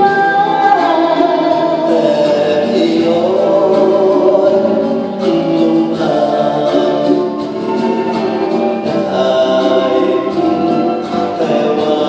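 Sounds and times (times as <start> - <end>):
singers holding long notes: 0.0 - 12.0
symphony orchestra strings: 0.0 - 12.0.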